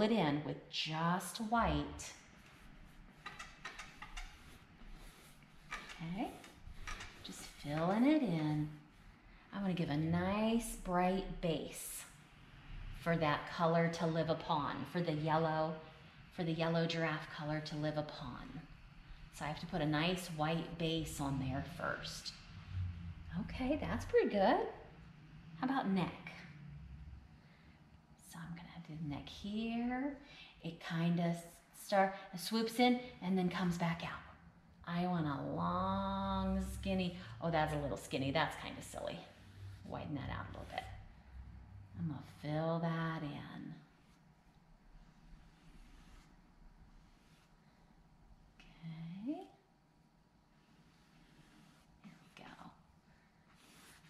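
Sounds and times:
woman speaking softly: 0.0 - 2.2, 6.0 - 6.5, 7.3 - 8.8, 9.5 - 12.1, 19.4 - 22.4, 23.3 - 24.8, 25.6 - 26.5, 28.2 - 41.0, 42.0 - 43.9, 48.6 - 49.6, 52.0 - 52.8.

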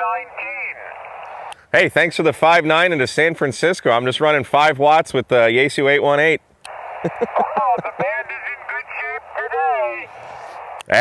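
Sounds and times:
person talking over radio: 0.0 - 1.5, 6.7 - 11.0
radio receiver hiss: 0.0 - 1.7, 6.7 - 11.0.

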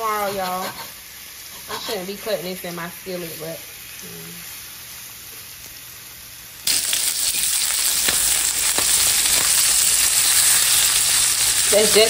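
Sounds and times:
steak and onions sizzling in skillet: 0.0 - 12.0.

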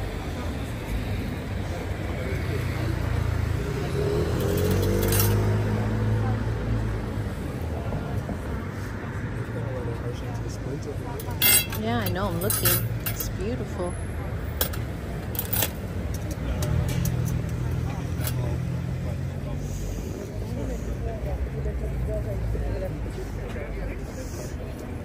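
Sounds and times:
distant background voices: 0.0 - 25.0
silverware clinking: 11.2 - 13.3.

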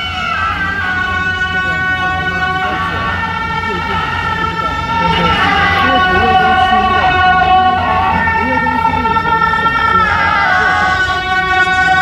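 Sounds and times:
crowd voices: 0.0 - 12.0
double-reed horns playing melody: 0.0 - 12.0.

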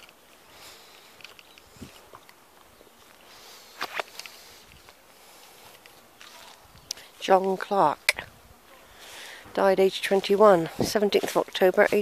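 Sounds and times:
footsteps on grass and leaves: 0.0 - 7.6, 8.9 - 12.0.

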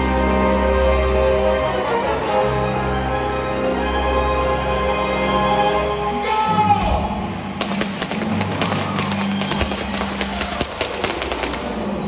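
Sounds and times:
orchestra holding low notes: 0.0 - 9.2
pyrotechnics crackling and popping: 7.6 - 12.0.

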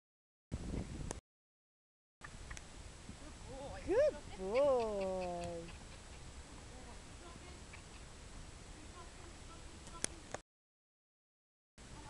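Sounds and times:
woman calling out: 3.8 - 5.8.

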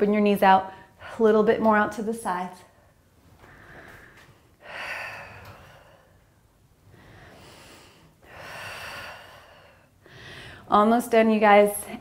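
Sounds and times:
woman breathing with effort: 2.8 - 10.7.

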